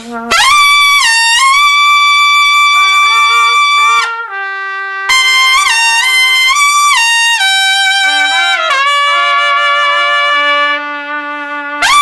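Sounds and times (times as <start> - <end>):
soft low trumpet notes: 0.0 - 12.0
trumpet holding high note: 0.0 - 12.0.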